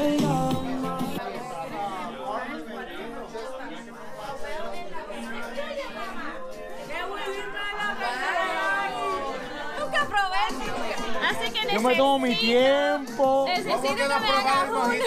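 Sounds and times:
music playing: 0:00.0 - 0:15.0
people chattering: 0:00.0 - 0:15.0.

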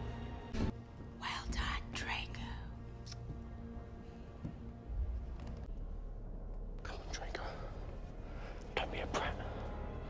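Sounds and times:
faint background music: 0:00.0 - 0:10.0
person whispering: 0:06.8 - 0:07.9, 0:08.7 - 0:09.7.

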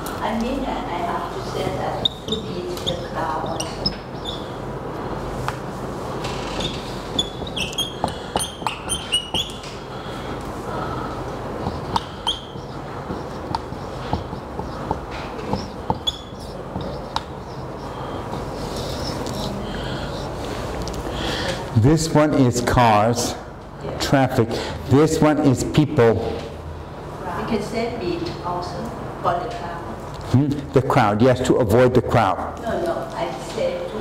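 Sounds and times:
low room hum: 0:00.0 - 0:34.0
marker squeaking on whiteboard: 0:01.9 - 0:04.7, 0:06.1 - 0:09.8, 0:11.6 - 0:20.3.

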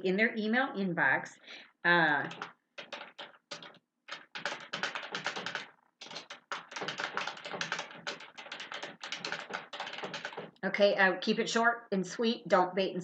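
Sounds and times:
fast typing on keyboard: 0:02.2 - 0:10.6.

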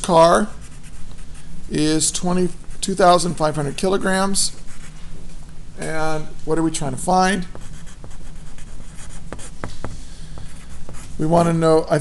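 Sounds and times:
pencil writing on paper: 0:07.5 - 0:11.2.

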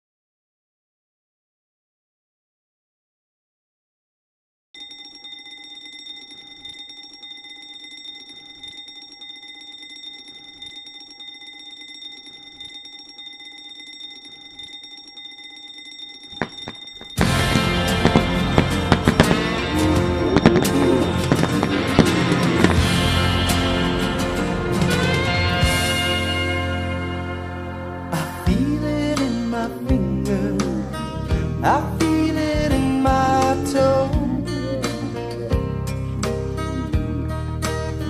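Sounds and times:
alarm clock bell ringing: 0:04.8 - 0:18.9
loud music: 0:17.2 - 0:28.9.

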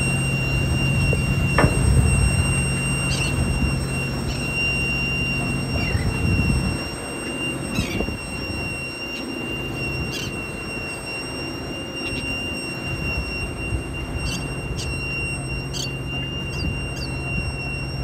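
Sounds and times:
boat engine running: 0:00.0 - 0:18.0
high-pitched whine: 0:00.0 - 0:18.0
water noise: 0:00.0 - 0:18.0
wind: 0:00.0 - 0:18.0.

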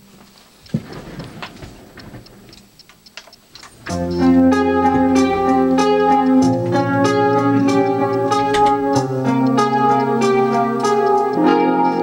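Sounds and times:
handling noise: 0:00.0 - 0:11.5.

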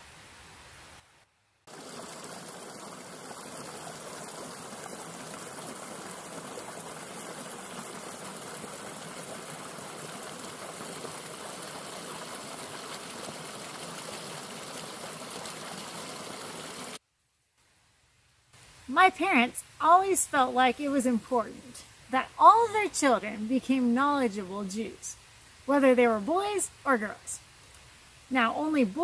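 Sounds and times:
stream rushing over rocks: 0:01.7 - 0:17.0.

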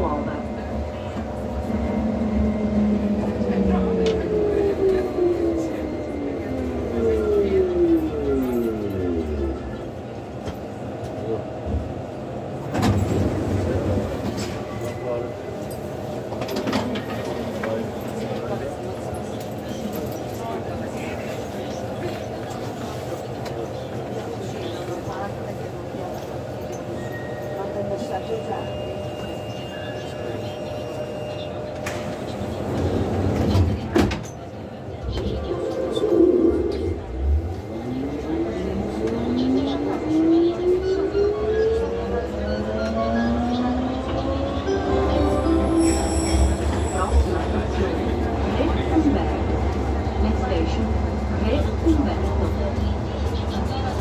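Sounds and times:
train rumbling: 0:00.0 - 0:54.0.

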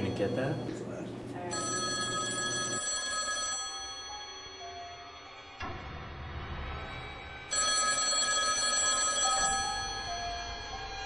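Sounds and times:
landline telephone ringing: 0:00.0 - 0:00.8, 0:01.5 - 0:05.3, 0:07.5 - 0:10.8.

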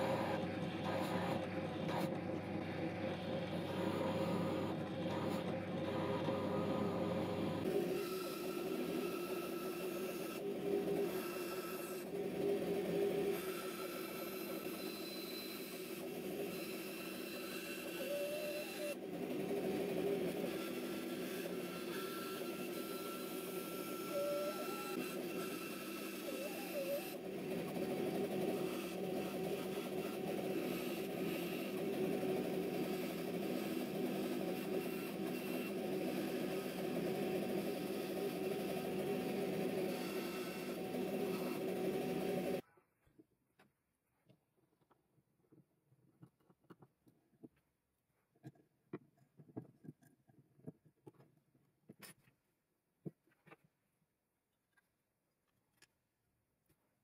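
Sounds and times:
bandsaw cutting: 0:03.5 - 0:42.6.

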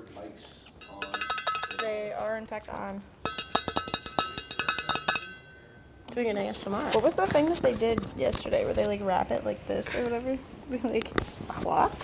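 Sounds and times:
faint ringing: 0:00.8 - 0:02.4, 0:03.2 - 0:06.6
earbuds clicking and tapping: 0:02.7 - 0:05.4, 0:10.8 - 0:11.6.

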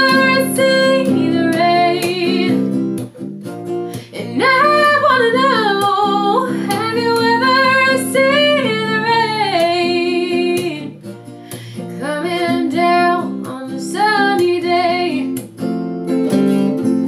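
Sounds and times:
woman singing: 0:00.0 - 0:02.8, 0:03.9 - 0:15.5
strummed acoustic guitar: 0:00.0 - 0:17.0.

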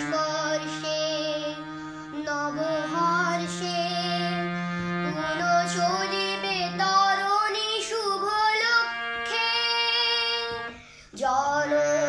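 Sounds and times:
boy singing: 0:00.0 - 0:12.0
harmonium chords: 0:00.0 - 0:12.0.

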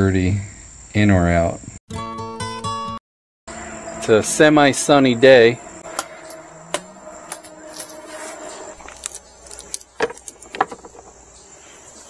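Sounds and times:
handling clicks and knocks: 0:08.8 - 0:11.2.

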